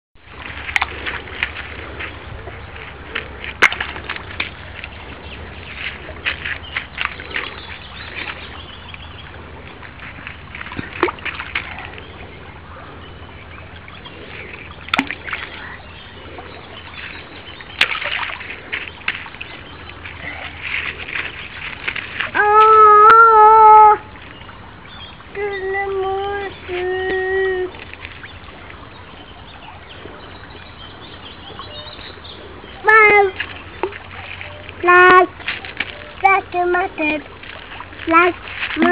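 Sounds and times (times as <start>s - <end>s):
stream water flowing: 0.2s - 38.9s
water splashing: 0.2s - 38.9s
child calling out: 22.3s - 24.1s, 25.3s - 27.8s, 32.8s - 33.4s, 34.8s - 35.3s.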